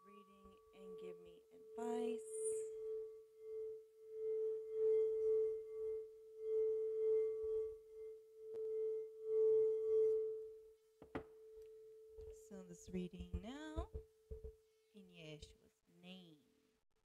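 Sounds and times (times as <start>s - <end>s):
singing bowl tone: 0.0s - 13.8s.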